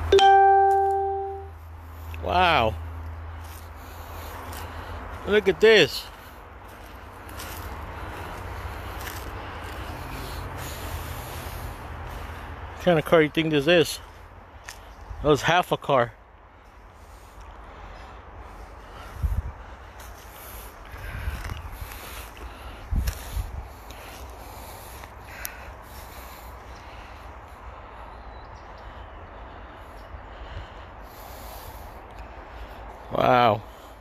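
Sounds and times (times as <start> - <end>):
outdoor background noise: 0.0 - 34.0.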